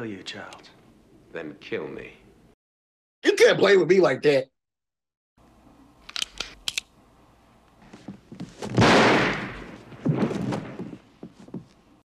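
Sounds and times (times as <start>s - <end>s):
gunshot with echoing decay: 8.8s - 10.4s.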